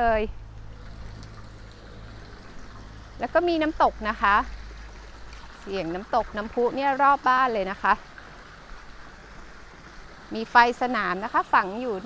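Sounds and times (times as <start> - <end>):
steady low rumble: 0.0 - 6.1
waterfall trickling: 0.0 - 12.0.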